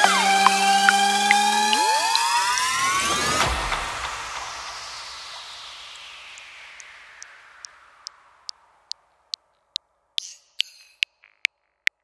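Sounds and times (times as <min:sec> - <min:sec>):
synth tones gliding upward: 0:00.0 - 0:03.6
hissing noise wash: 0:00.0 - 0:09.4.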